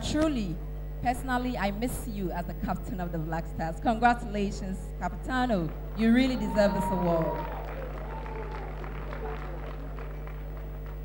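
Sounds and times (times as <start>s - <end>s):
low electrical hum: 0.0s - 11.0s
audience clapping: 5.6s - 11.0s.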